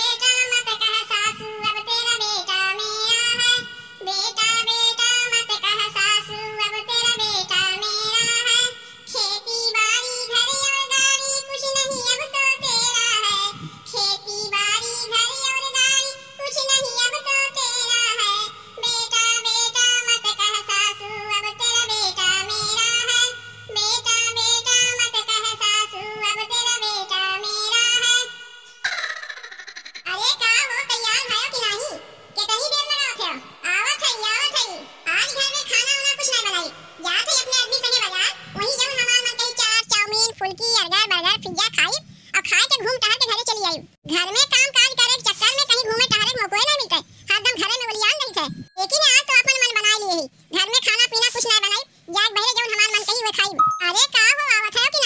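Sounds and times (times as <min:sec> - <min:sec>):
woman singing high-pitched: 0:00.0 - 0:28.8
woman breathing: 0:08.8 - 0:09.1, 0:42.0 - 0:42.4, 0:47.0 - 0:47.3.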